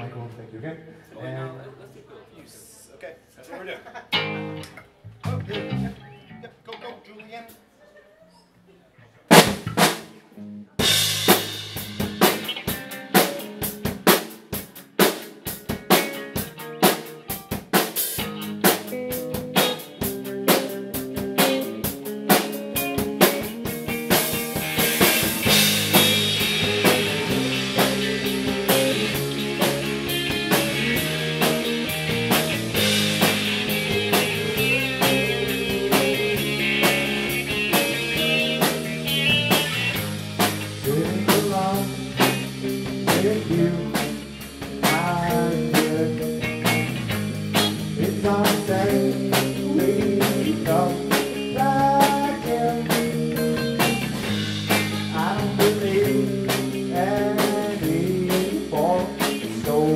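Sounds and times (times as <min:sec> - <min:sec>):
rock band playing: 0:04.1 - 0:06.4, 0:09.3 - 0:59.9
drum hits: 0:09.3 - 0:10.1, 0:10.8 - 0:19.8, 0:21.2 - 0:43.4.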